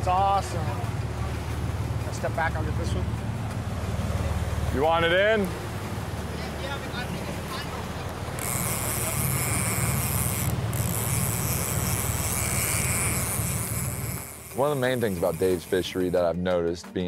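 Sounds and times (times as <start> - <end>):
boat engine drone: 0.0 - 16.9
fishing reel drag buzzing: 8.3 - 16.2.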